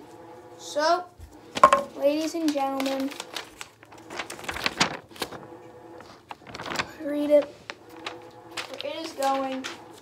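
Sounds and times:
paper rustling and crinkling: 1.4 - 10.0.

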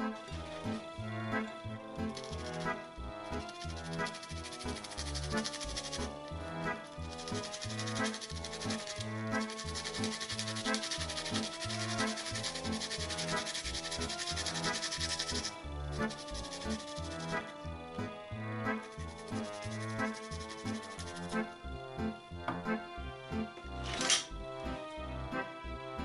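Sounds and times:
background music with bass line: 0.0 - 26.0
garlic scraping on metal grater: 3.4 - 17.5.

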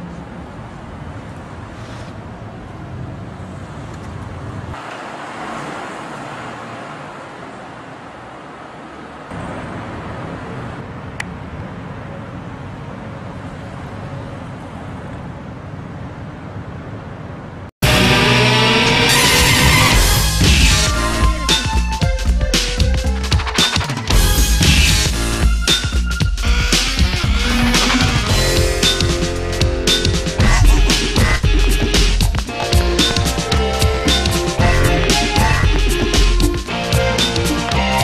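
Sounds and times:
passing traffic noise: 0.0 - 38.0.

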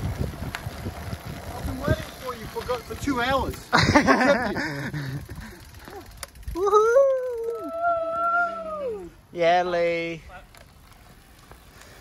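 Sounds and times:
people cheering with whoops: 5.9 - 9.1.

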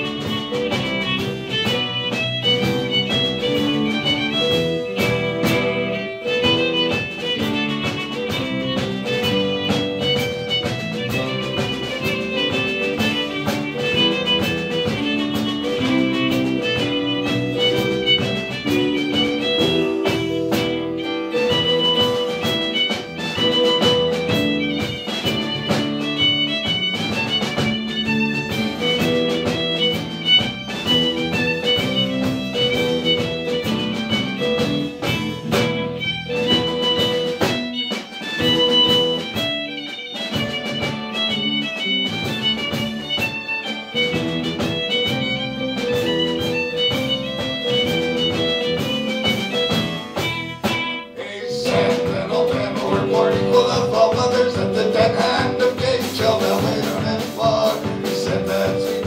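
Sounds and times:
bowed fiddle melody: 0.0 - 59.0
drum kit: 0.0 - 59.0
electric bass: 0.0 - 59.0
strummed guitars: 0.0 - 59.0.

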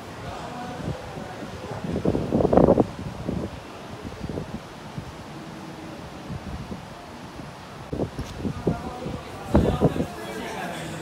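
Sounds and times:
wind noise on microphone: 0.0 - 11.0.

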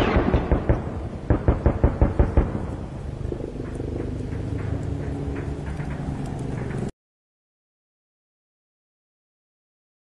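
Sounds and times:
helicopter gunfire bangs: 0.0 - 3.0
helicopter running: 1.5 - 6.9.

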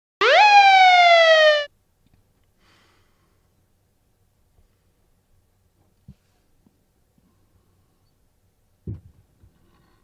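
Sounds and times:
police siren whoop: 0.2 - 1.7.

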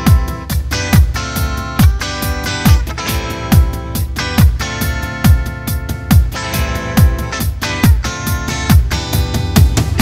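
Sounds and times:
deep kick drum with falling pitch: 5.2 - 10.0.

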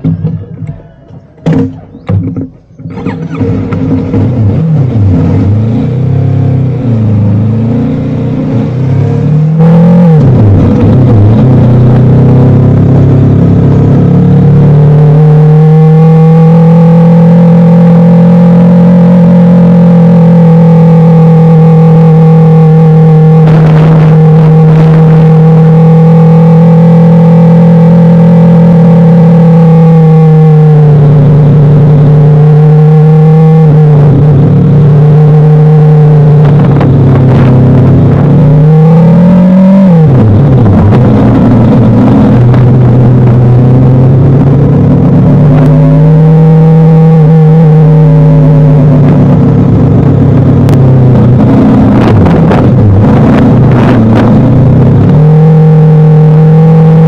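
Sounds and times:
motorcycle engine cruising: 0.0 - 57.0.

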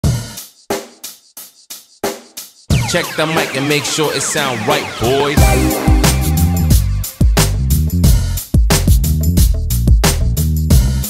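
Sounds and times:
kick drum and cymbal hit: 5.4 - 11.0.

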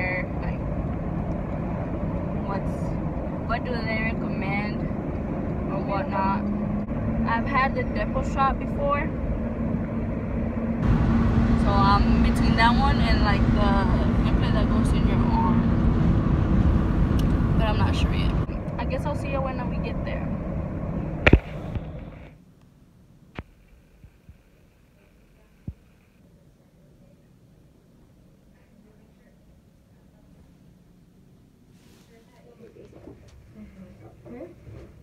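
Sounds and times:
car road and engine rumble: 0.0 - 24.7
constant low hum: 0.0 - 35.0.

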